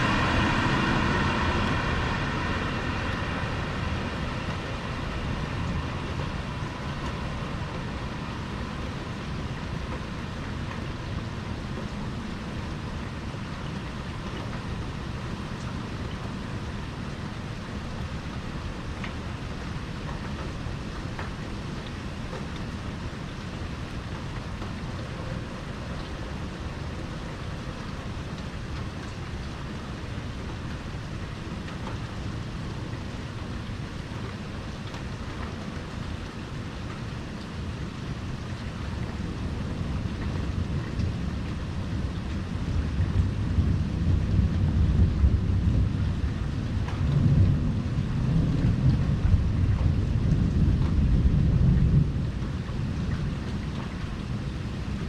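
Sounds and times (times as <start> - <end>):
low rolling thunder rumble: 0.0 - 55.0
steady rain falling: 0.0 - 55.0.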